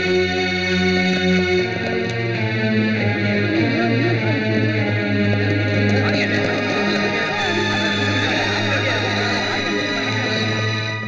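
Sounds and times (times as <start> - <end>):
distorted electric guitar chords: 0.0 - 11.0.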